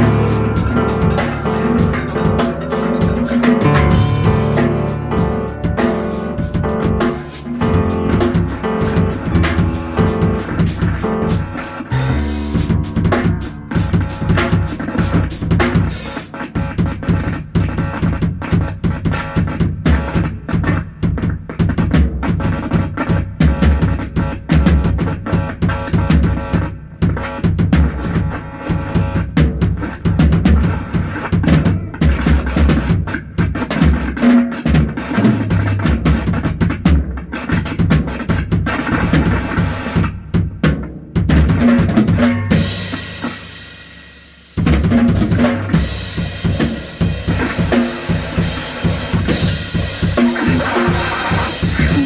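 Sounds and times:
busy drum kit playing: 0.0 - 52.0
jazz band playing: 0.0 - 52.0.

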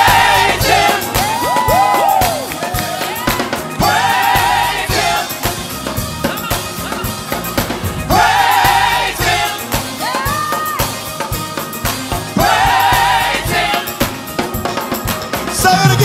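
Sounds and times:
gospel group singing: 0.0 - 16.0
keyboard accompaniment: 0.0 - 16.0.

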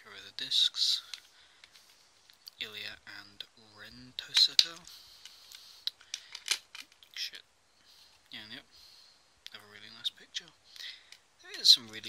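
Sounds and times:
plastic clicks and scrapes: 4.3 - 7.1.

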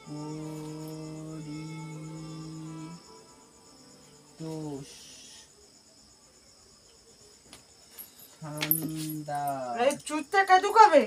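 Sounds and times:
high-pitched insect chirping: 0.0 - 11.0
soft hiss: 0.0 - 11.0.

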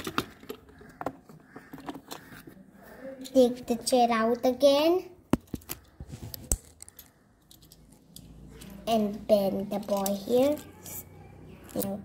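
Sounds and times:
plastic toy pieces clicking: 0.0 - 2.5, 5.4 - 8.8, 9.8 - 11.0, 11.6 - 12.0.

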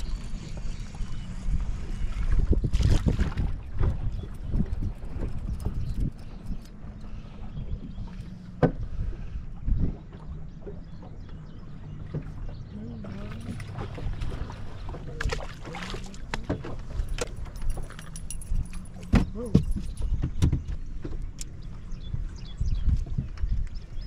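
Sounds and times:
choppy water against boat: 0.0 - 24.0
wind: 0.0 - 24.0.

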